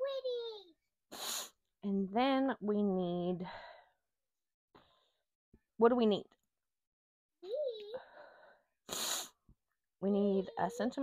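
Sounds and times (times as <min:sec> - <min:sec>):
sharp burst of breath: 0:01.1 - 0:01.6, 0:08.4 - 0:09.4.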